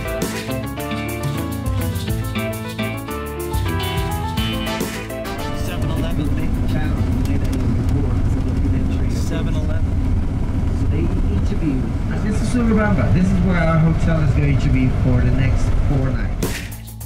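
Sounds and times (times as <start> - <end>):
guitar music: 0.0 - 7.8
bus engine and tyres rumbling: 5.5 - 16.7.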